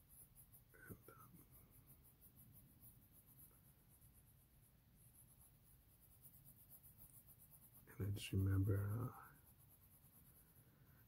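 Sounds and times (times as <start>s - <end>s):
low room hum: 0.0s - 11.0s
pencil scratching on paper: 0.0s - 11.0s.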